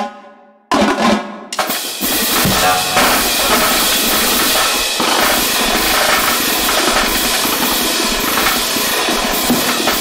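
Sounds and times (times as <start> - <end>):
fast dense drumline drumming: 2.0 - 10.0
tenor drum stroke: 2.3 - 6.9.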